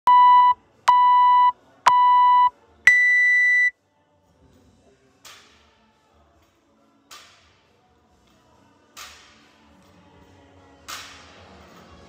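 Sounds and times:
longer higher beep: 0.1 - 3.7
short timer beeps: 0.1 - 3.7.

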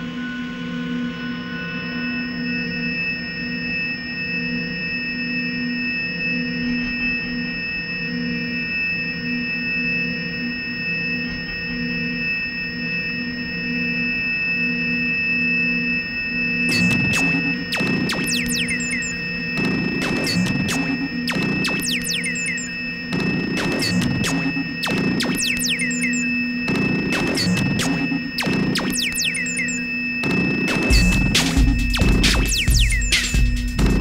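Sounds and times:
synthesizer drone: 16.5 - 34.0.

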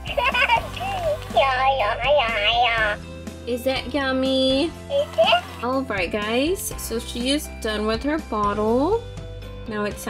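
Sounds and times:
children's tune: 0.0 - 3.1, 3.8 - 5.8
electronic doll baby babbling: 0.8 - 3.0, 4.9 - 5.6.

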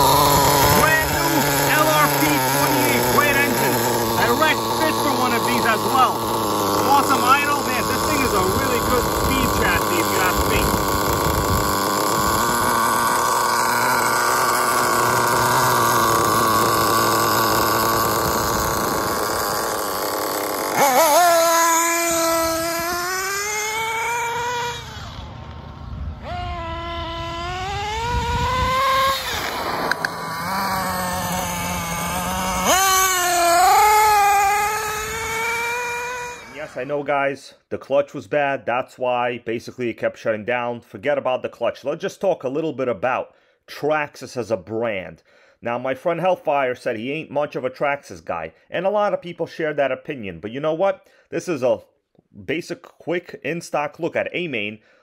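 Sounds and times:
model truck engine revving: 0.0 - 37.2.

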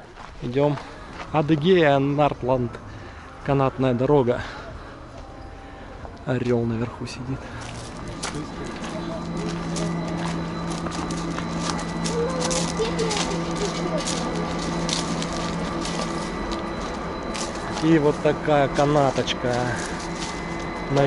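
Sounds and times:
footsteps crunching on gravel: 0.0 - 1.9, 7.5 - 21.0
low machinery hum: 0.0 - 21.0.

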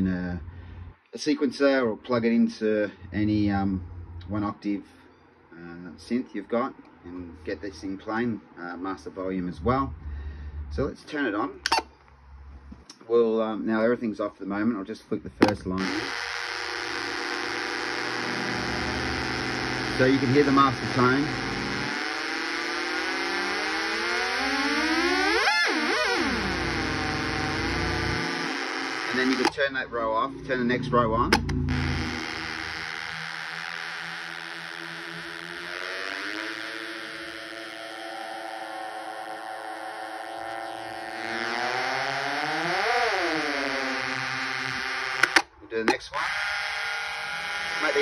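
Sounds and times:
clicks: 15.4 - 18.7, 31.3 - 33.8, 45.1 - 46.0
synth drone gliding in pitch: 17.8 - 29.2, 29.9 - 44.9.

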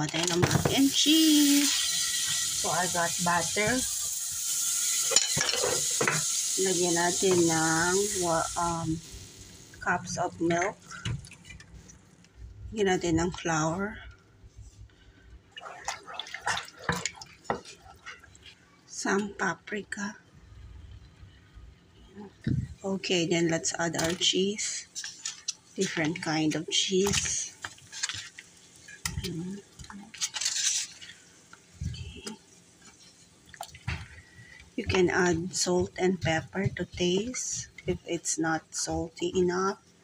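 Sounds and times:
spatula scraping pot: 15.6 - 18.3, 34.0 - 38.8
spoon stirring wet mixture: 15.6 - 18.6, 31.9 - 39.4.

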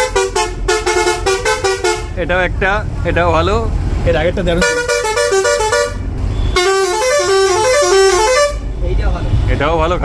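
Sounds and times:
bus musical horn playing tune: 0.0 - 2.2, 4.6 - 8.7.

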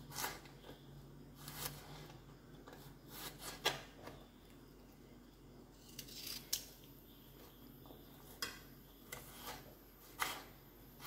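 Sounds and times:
knife slicing carrot: 0.0 - 0.6.

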